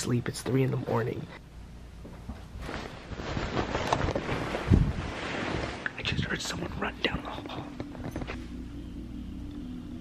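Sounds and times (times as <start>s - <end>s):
phone microphone rustling: 2.0s - 6.0s
bedsheets rustling: 2.0s - 8.6s.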